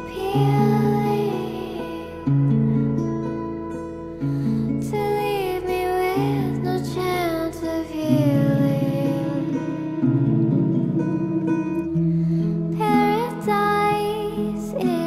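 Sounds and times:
woman singing: 0.0s - 2.3s, 4.7s - 10.2s, 10.8s - 15.0s
guitar chords: 0.0s - 15.0s.

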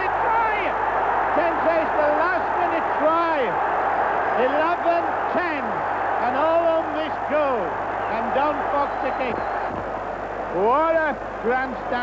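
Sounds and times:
male commentator speaking: 0.0s - 3.6s, 4.3s - 9.5s, 10.5s - 12.0s
stadium crowd cheering: 0.0s - 12.0s.

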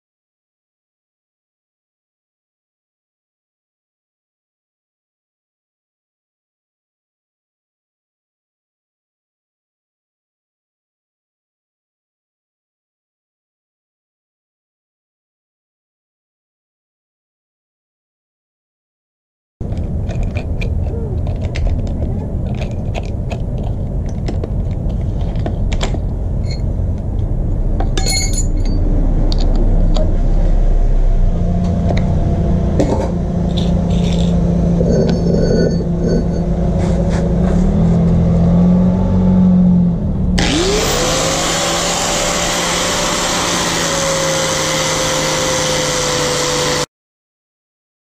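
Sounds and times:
low rumble: 19.6s - 40.4s
small clicks and knocks: 19.7s - 26.0s
grinder disc grinding steel: 25.1s - 26.7s, 32.8s - 37.3s, 40.4s - 46.8s
angle grinder whining: 31.6s - 37.0s, 40.4s - 46.9s.

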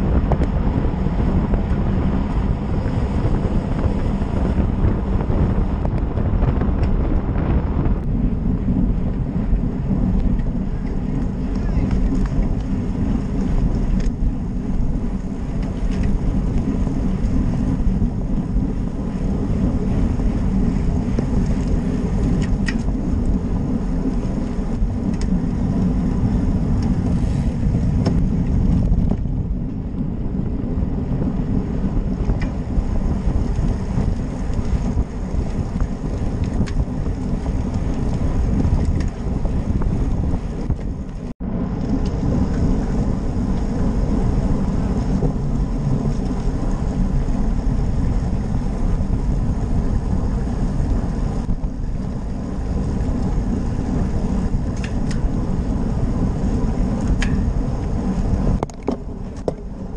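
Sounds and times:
bike road noise: 0.0s - 59.9s
wind buffeting microphone: 0.0s - 59.9s.

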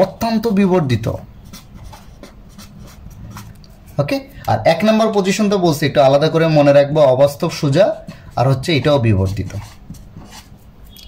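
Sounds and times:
pen scratching on paper: 1.0s - 4.3s, 7.5s - 11.0s.

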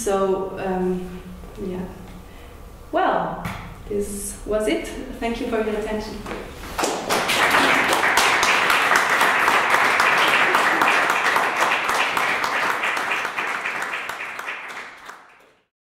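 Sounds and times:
audience applauding: 6.8s - 15.7s.

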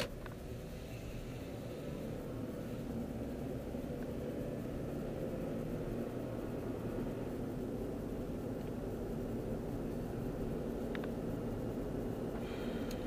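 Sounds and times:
car engine and tyre rumble: 0.0s - 13.0s.

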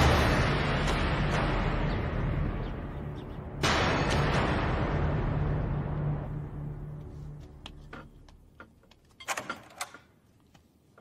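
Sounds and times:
loud crash: 0.0s - 2.7s, 3.6s - 6.4s
dramatic soundtrack music: 0.0s - 8.6s
wooden door opening clatter: 7.9s - 10.2s.

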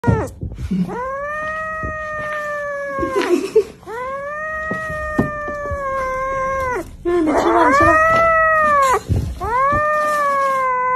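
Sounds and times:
kitten meowing: 0.9s - 3.3s, 3.9s - 10.9s.

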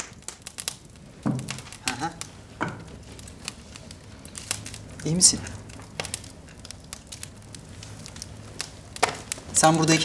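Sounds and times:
faint crackles and clicks: 0.0s - 10.0s.

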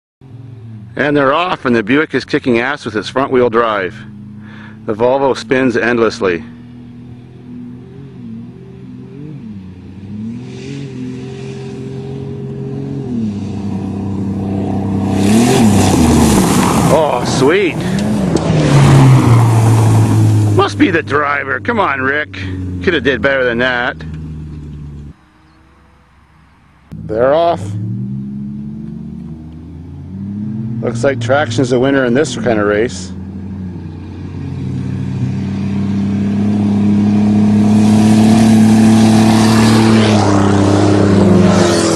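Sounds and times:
car engines racing at high revs: 0.2s - 41.9s
car passing with tyre and dirt noise: 0.2s - 41.9s.

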